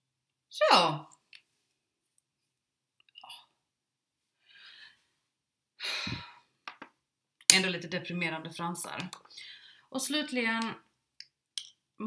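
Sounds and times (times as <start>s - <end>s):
woman sighing: 5.8s - 6.5s.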